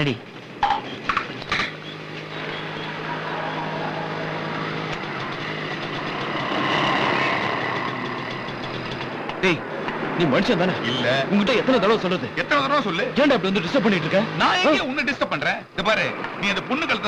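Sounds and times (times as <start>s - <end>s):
low engine hum: 0.0s - 14.8s
motorcycle engines running: 0.0s - 17.0s
street noise: 0.0s - 17.0s.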